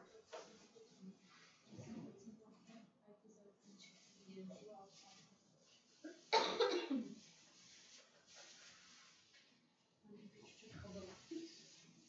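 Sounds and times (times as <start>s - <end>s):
person coughing: 6.4s - 7.1s.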